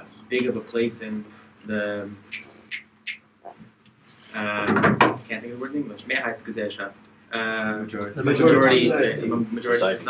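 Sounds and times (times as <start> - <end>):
man speaking: 4.4 - 10.0.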